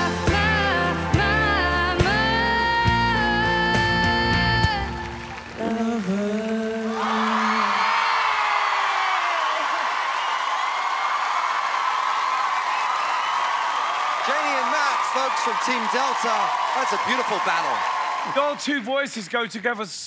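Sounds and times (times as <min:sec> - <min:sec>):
pop song with band: 0:00.0 - 0:08.2
audience applauding and cheering: 0:00.0 - 0:19.1.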